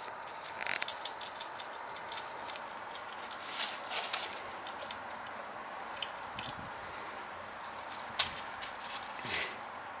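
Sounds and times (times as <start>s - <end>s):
dry leaves rustling and crackling: 0.0s - 5.3s, 7.6s - 9.6s
steady background hiss: 0.0s - 10.0s.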